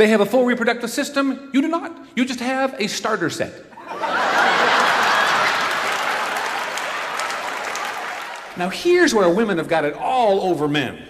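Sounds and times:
audience laughing: 3.8 - 8.6
audience applauding: 3.9 - 9.2.

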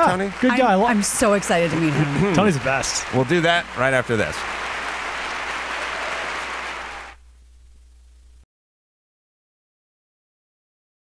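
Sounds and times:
applause: 0.0 - 7.2.

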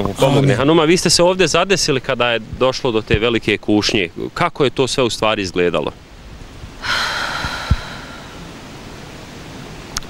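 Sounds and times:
microphone handling bumps: 2.4 - 3.4
breathy hiss into microphone: 6.2 - 9.3.

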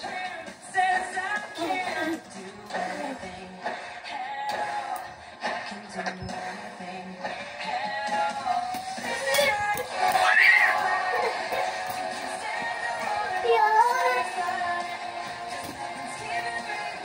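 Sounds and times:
song with singing and music: 0.0 - 17.0.

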